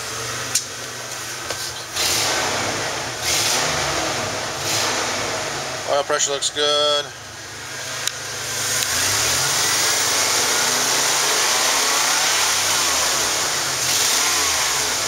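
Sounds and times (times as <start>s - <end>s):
van engine revving: 0.0s - 15.0s.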